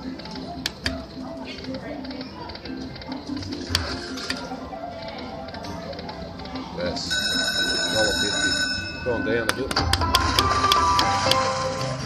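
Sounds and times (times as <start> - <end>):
electronic slot machine jingle: 7.0 - 12.0.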